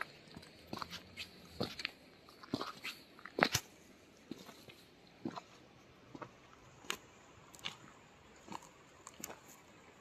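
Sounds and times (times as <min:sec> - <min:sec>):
footsteps crunching on pebbles: 0:00.0 - 0:09.5.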